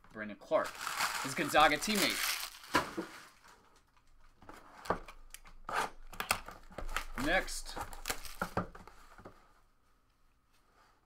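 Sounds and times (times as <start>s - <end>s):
packaging tearing: 0.6s - 3.5s, 6.2s - 8.6s
plastic packaging crinkling: 0.6s - 4.3s, 6.6s - 8.8s.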